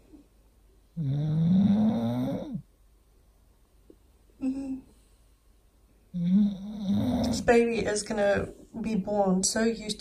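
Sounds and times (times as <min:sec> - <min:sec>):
dog snoring: 0:00.9 - 0:02.7, 0:06.1 - 0:07.6.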